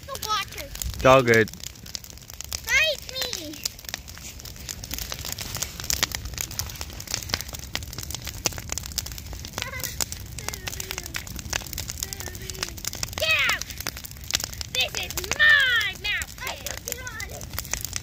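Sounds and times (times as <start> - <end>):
bonfire crackling and popping: 0.0 - 18.0.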